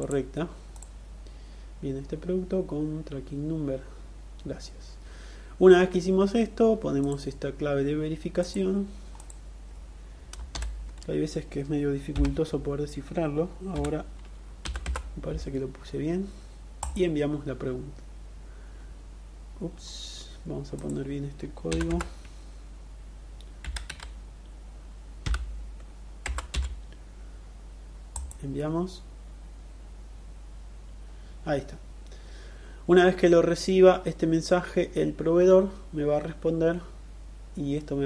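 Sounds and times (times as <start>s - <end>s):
computer keyboard clicks: 13.8s - 15.5s, 23.6s - 24.2s, 26.3s - 26.8s.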